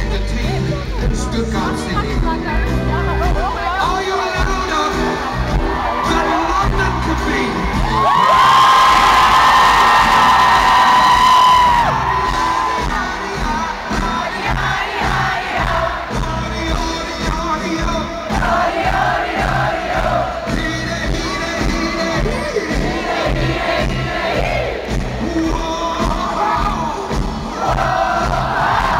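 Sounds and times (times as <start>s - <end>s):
live band music: 0.0s - 28.9s
crowd cheering: 4.2s - 28.9s
crowd singing along: 10.0s - 28.9s.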